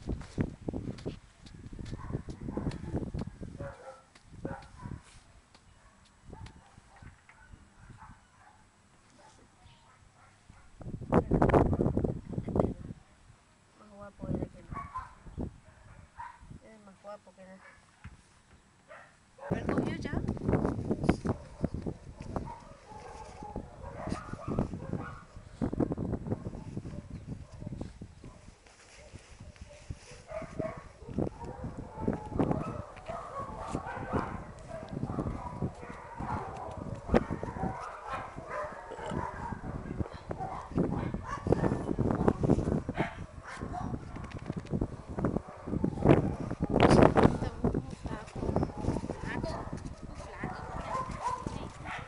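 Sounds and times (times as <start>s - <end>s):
dogs barking: 2.0s - 5.0s, 5.8s - 10.8s, 14.7s - 16.4s, 18.9s - 19.7s, 21.3s - 25.4s, 28.3s - 41.9s, 42.7s - 44.2s, 45.4s - 47.6s, 48.5s - 52.0s.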